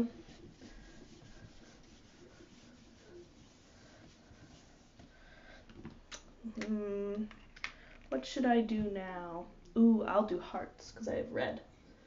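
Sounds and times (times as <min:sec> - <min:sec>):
eraser rubbing on whiteboard: 0:00.0 - 0:05.1.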